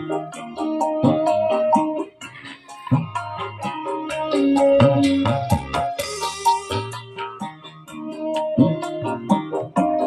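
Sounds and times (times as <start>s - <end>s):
plucked-string song over a beat: 0.0s - 10.0s.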